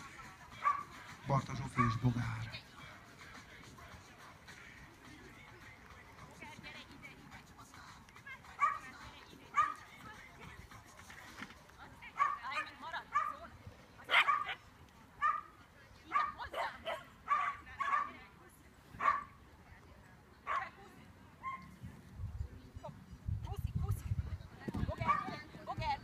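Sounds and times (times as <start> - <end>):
dog barking: 0.6 - 0.9, 1.8 - 2.1, 8.6 - 8.9, 9.5 - 9.8, 12.2 - 13.4, 14.1 - 14.6, 15.2 - 15.5, 16.1 - 18.2, 19.0 - 19.3, 20.5 - 20.7, 25.0 - 25.3.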